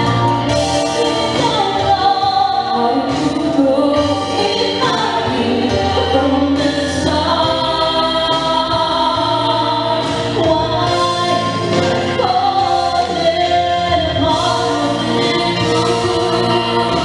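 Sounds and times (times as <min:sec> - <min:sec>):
instrumental accompaniment: 0:00.0 - 0:17.0
two women singing a duet: 0:00.0 - 0:17.0.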